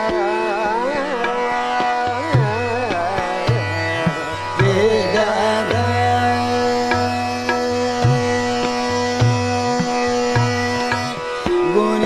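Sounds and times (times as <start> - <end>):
harmonium: 0.0 - 12.0
tabla strokes: 0.0 - 12.0.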